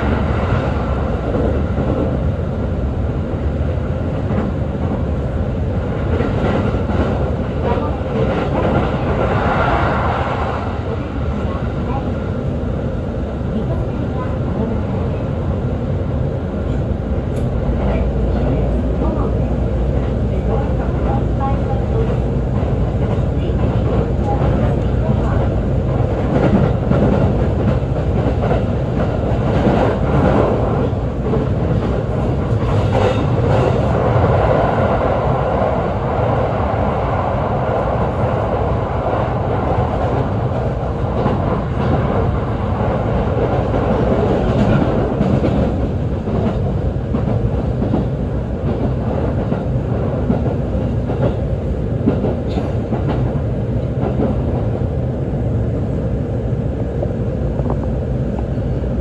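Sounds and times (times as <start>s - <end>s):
train wheels on rails: 0.0s - 12.6s, 16.5s - 55.8s.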